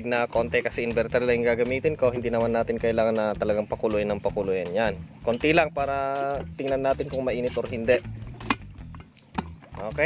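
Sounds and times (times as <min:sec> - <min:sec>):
kettle lid and base clicks: 0:06.4 - 0:09.9.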